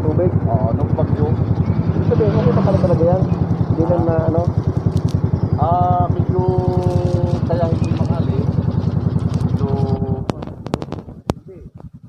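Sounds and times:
man speaking: 0:00.0 - 0:04.6, 0:05.6 - 0:08.6, 0:09.5 - 0:11.7
motorcycle engine idling: 0:00.0 - 0:12.0.

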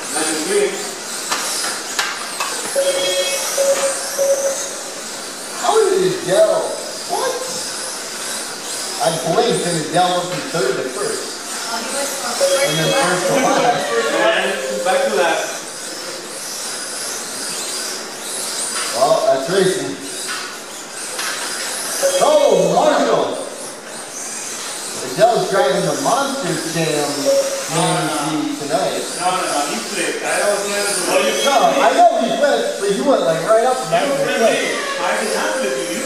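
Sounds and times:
electric motors whining: 0:00.0 - 0:36.0
steady tone: 0:02.8 - 0:05.0, 0:12.3 - 0:15.6, 0:33.9 - 0:36.0.

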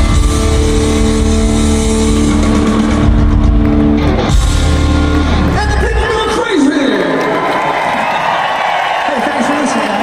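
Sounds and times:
rock band holding loud chord: 0:00.0 - 0:06.4.

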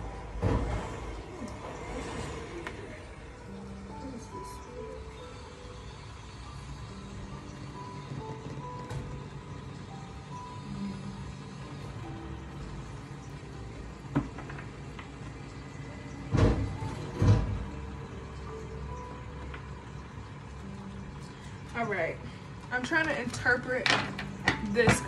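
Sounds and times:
low background hum: 0:00.0 - 0:25.0.

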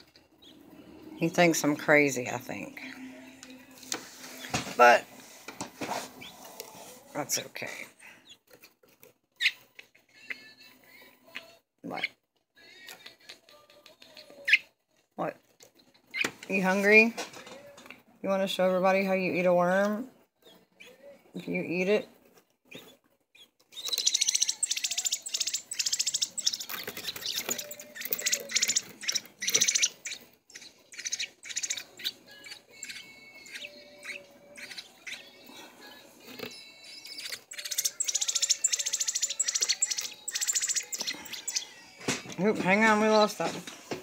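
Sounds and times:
fledgling bird begging chirps: 0:23.4 - 0:35.4, 0:36.6 - 0:41.8.

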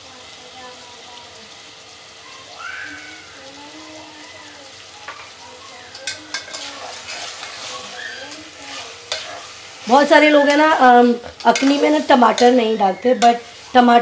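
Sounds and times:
food sizzling in a pot: 0:00.0 - 0:14.0
metal spoon scraping a pot: 0:05.9 - 0:13.9.

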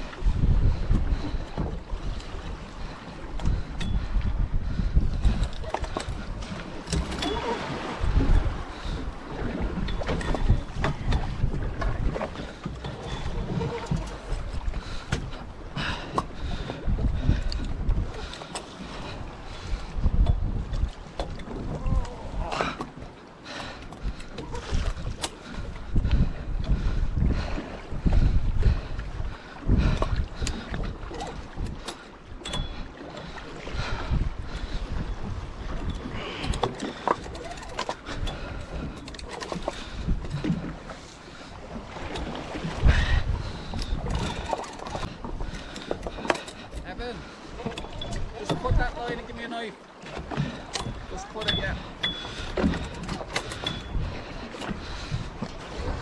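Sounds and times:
water washing along hull: 0:00.0 - 0:56.0
wind buffeting microphone: 0:00.0 - 0:56.0.

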